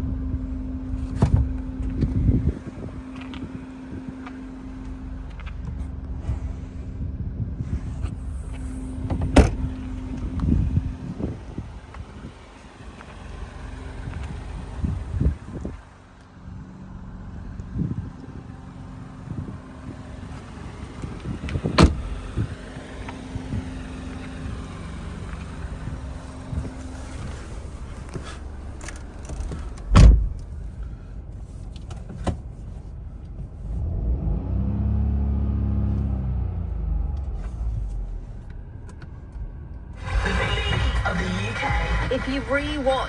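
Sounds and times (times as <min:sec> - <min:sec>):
car engine idling: 0:00.0 - 0:33.8, 0:35.9 - 0:43.0.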